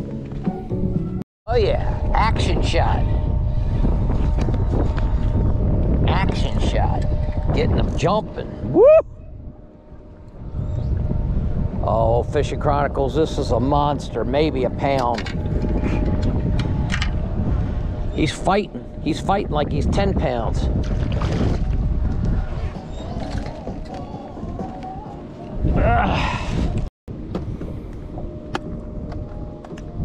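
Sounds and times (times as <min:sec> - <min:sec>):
faint boat hum: 0:00.0 - 0:30.0
low rumble: 0:01.5 - 0:30.0
wind buffeting microphone: 0:01.5 - 0:30.0.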